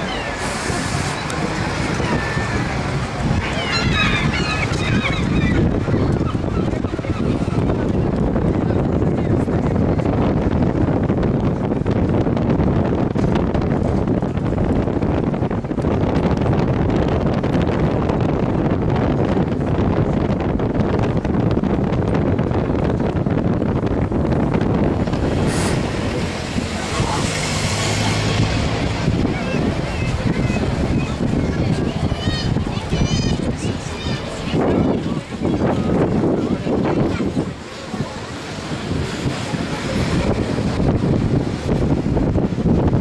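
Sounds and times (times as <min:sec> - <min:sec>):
crowd chatter: 0:00.0 - 0:43.0
wind rumbling on microphone: 0:00.0 - 0:43.0.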